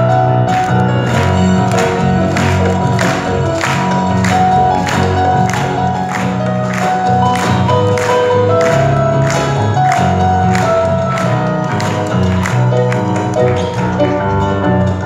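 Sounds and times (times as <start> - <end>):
electric bass: 0.0 - 15.0
keyboards: 0.0 - 15.0
hand-claps: 0.5 - 15.0.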